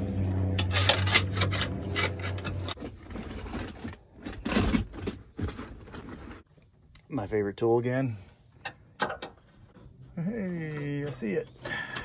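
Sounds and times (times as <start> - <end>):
steady low hum: 0.0 - 2.8.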